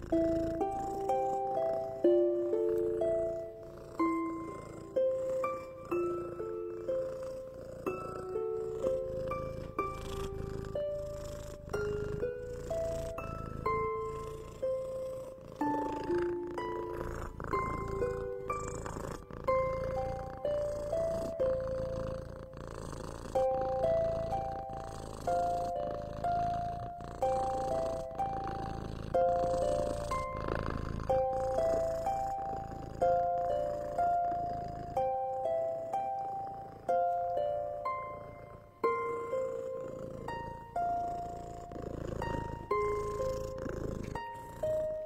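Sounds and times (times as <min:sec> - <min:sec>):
cat purring: 0:00.0 - 0:45.0
plucked bell-like melody: 0:00.0 - 0:45.0.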